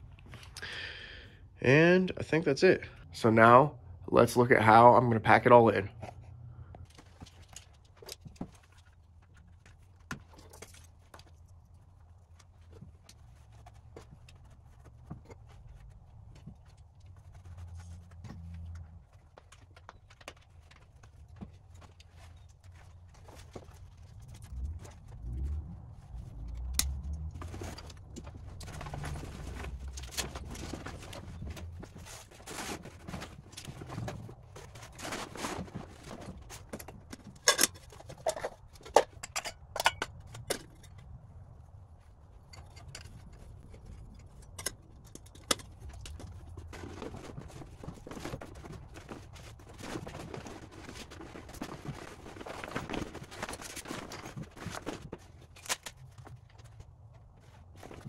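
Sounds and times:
clicks and knocks of gear: 0:06.0 - 0:58.0.

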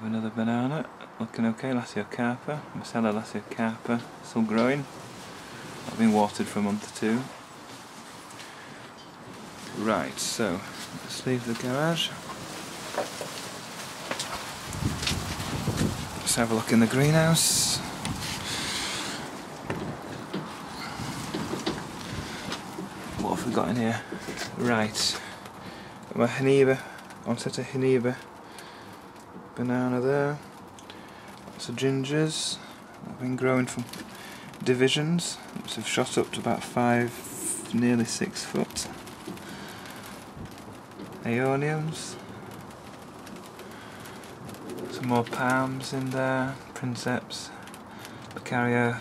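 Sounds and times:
steady hiss: 0:00.0 - 0:49.0
handling rustle: 0:03.8 - 0:29.6, 0:32.4 - 0:48.5
knocks and rattles: 0:19.2 - 0:24.6.

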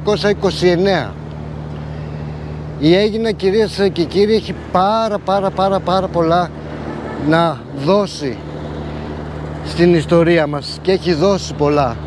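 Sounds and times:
man speaking: 0:00.0 - 0:01.2, 0:02.8 - 0:08.5, 0:09.6 - 0:12.0
low engine hum: 0:00.0 - 0:12.0.

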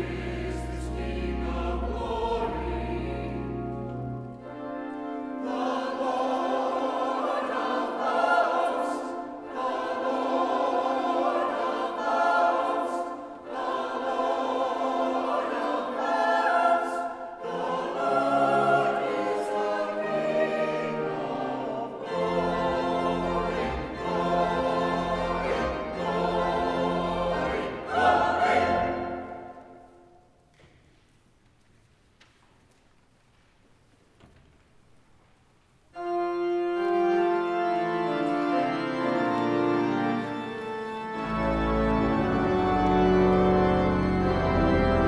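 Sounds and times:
church choir singing: 0:00.0 - 0:30.5, 0:36.0 - 0:45.0.

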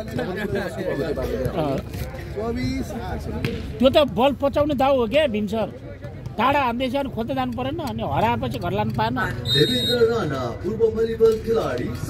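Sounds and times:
voices talking: 0:00.0 - 0:12.0.

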